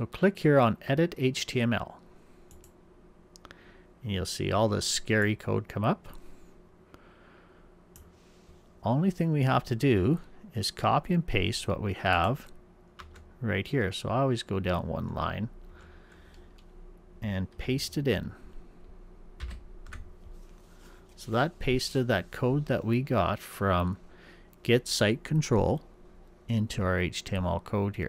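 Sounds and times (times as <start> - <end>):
computer mouse clicks: 2.5 - 2.8
computer keyboard keystrokes: 13.0 - 13.2, 19.4 - 20.1
man's voice: 21.2 - 24.0.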